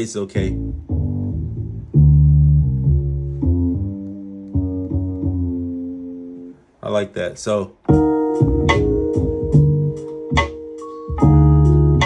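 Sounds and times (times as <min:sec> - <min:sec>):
sustained low bass notes: 0:00.0 - 0:06.6, 0:07.9 - 0:12.0.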